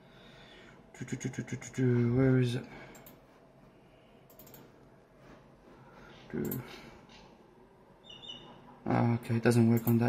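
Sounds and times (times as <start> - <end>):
keyboard and mouse clicks: 2.9 - 3.2, 4.3 - 4.8.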